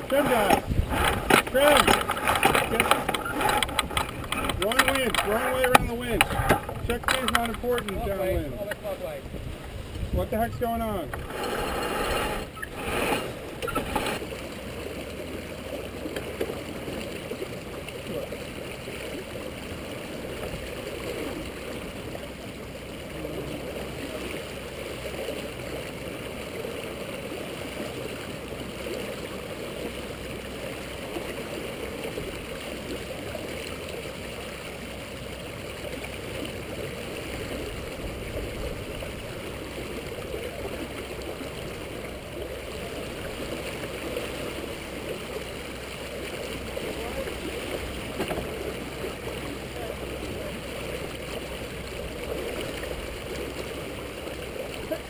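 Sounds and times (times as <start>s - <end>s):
water rushing along boat hull: 0.0s - 55.0s.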